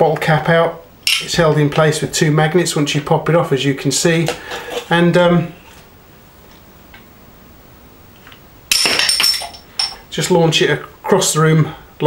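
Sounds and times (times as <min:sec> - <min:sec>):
metal bottle cap clattering: 0:01.1 - 0:01.3, 0:08.7 - 0:10.0
bottle-cap launcher snapping: 0:08.7 - 0:10.0.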